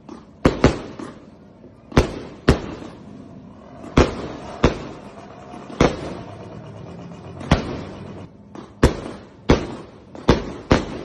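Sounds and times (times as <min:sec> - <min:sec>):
fireworks exploding: 0:00.0 - 0:06.5, 0:07.3 - 0:11.0.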